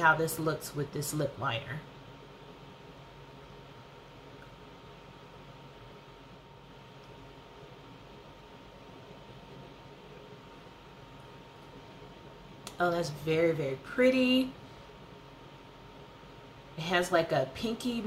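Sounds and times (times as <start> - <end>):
room tone hiss: 0.0 - 18.0.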